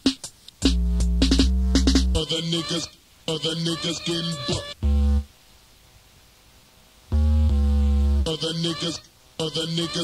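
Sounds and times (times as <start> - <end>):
drum machine hits: 0.0 - 2.2
pitch-bending melodic synth: 4.8 - 5.2, 7.1 - 8.2
deep bass note: 4.8 - 5.3, 7.1 - 8.3.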